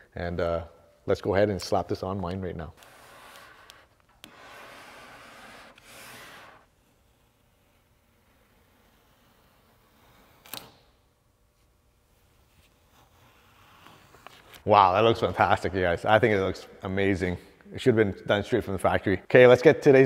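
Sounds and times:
squeegee scraping tape: 2.7 - 11.1, 12.1 - 14.7.

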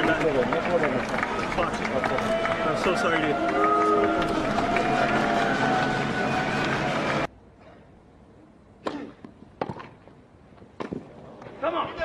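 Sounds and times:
crowd chatter: 0.0 - 7.3.

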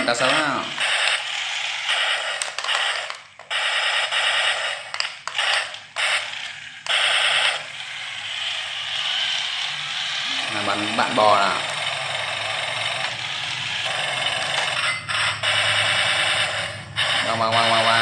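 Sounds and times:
toy electronic gunfire effects: 0.0 - 18.0
toy tank whirring: 0.0 - 18.0.

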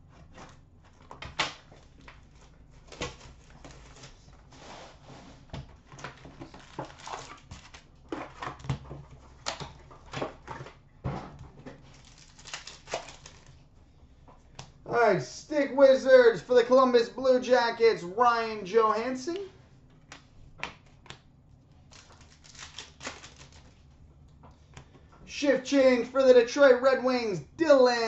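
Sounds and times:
foil packs rustling and crinkling: 5.9 - 10.7, 11.7 - 13.7, 21.8 - 23.8.

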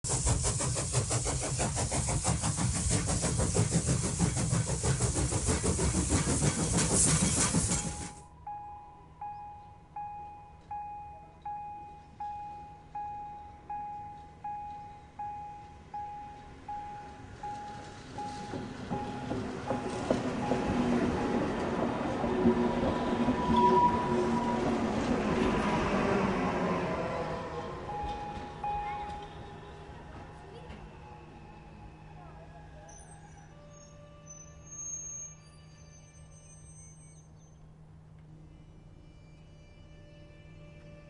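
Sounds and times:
steam locomotive chuffing: 0.0 - 8.3, 14.4 - 37.2
train wheels rolling on rails: 0.0 - 8.3, 13.4 - 38.3.

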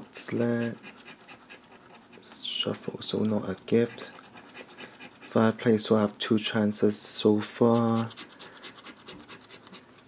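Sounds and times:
lottery ticket being scratched: 0.2 - 2.4, 3.6 - 5.5, 7.6 - 9.8.

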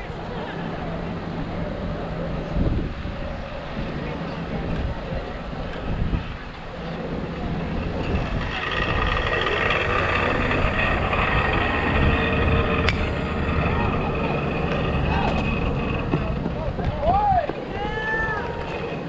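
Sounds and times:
spectators and players talking: 0.0 - 19.0
wind rumble on microphone: 0.0 - 19.0
people shouting: 17.0 - 18.7.

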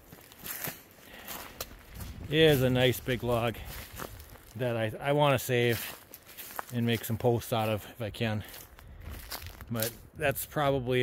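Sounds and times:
footsteps through dry grass: 0.0 - 10.2.

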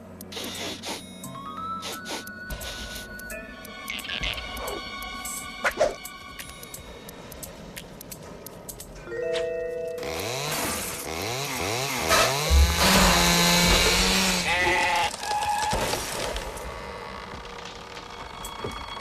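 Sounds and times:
background music: 1.0 - 14.6
loud buzzing: 10.0 - 15.2.

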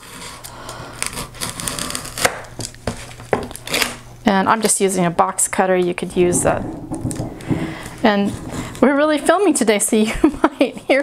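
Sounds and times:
box cutter slicing paper: 0.0 - 4.0.

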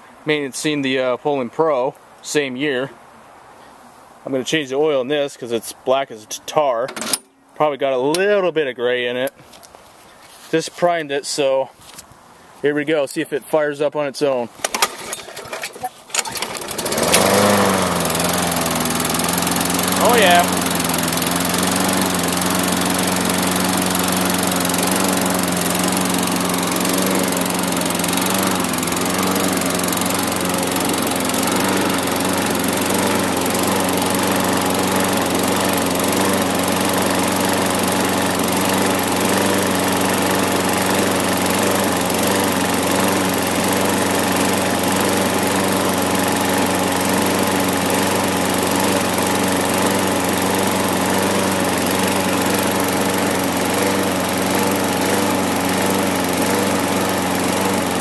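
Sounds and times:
lawn mower engine running: 14.5 - 58.0.

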